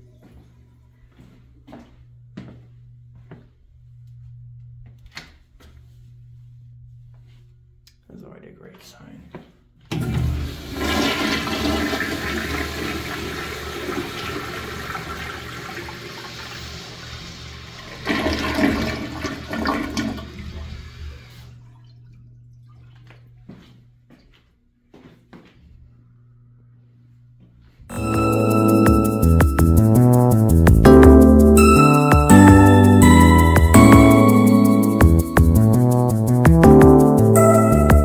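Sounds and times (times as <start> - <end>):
toilet flushing: 9.9 - 23.2.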